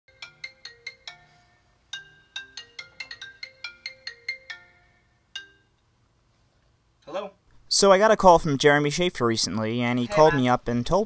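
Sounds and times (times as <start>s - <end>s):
phone ringtone chiming melody: 0.1s - 5.8s.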